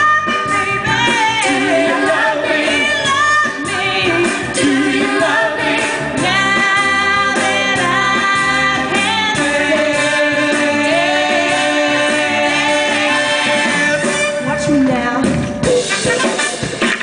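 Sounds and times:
female vocal group singing soul: 0.0s - 14.1s
musical accompaniment: 0.0s - 17.0s.

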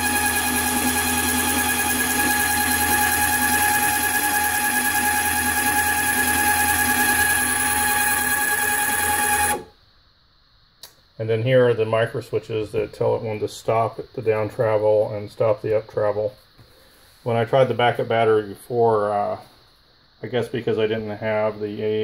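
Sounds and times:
electric motor whine: 0.0s - 9.7s
faint click: 10.8s - 11.0s.

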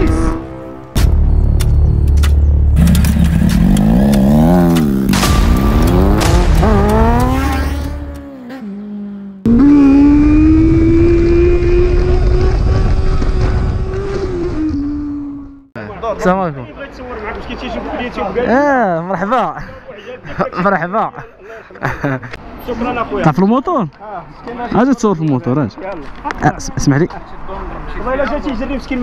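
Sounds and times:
motorcycle engine revving: 2.7s - 15.7s.

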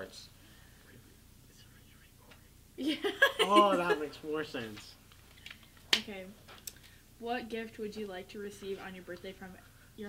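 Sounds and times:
faint whispering: 0.8s - 2.6s.

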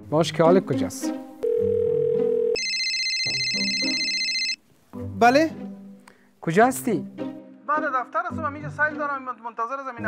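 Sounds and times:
low background music: 0.0s - 2.6s, 4.8s - 10.0s
electronic phone ring: 1.4s - 4.6s
phone ringback tone: 1.4s - 4.6s.

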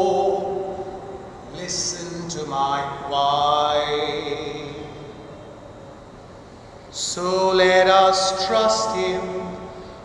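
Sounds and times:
man singing a long held note: 0.0s - 5.4s, 7.0s - 10.0s.

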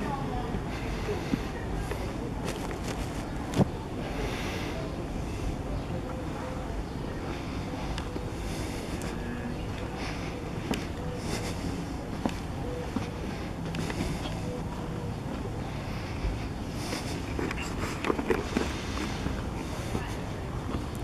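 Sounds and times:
faint voices: 0.0s - 21.0s
low street rumble: 0.0s - 21.0s.

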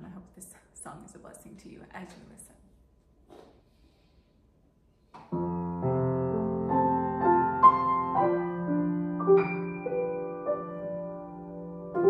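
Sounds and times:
soft piano chords: 5.4s - 12.0s.

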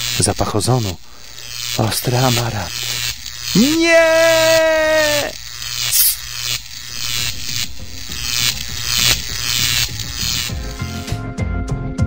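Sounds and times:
electric crackling and buzzing: 0.0s - 11.2s
man shouting: 3.6s - 5.4s.

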